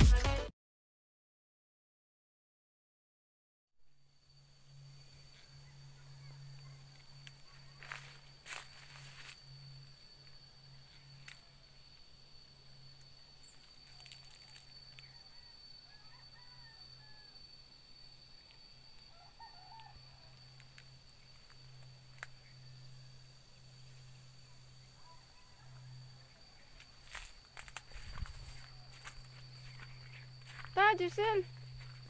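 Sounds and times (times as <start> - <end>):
high-pitched whine: 3.8 - 32.0
low hum: 3.9 - 15.1, 19.9 - 32.0
rustling through vegetation: 7.0 - 9.6, 26.6 - 32.0.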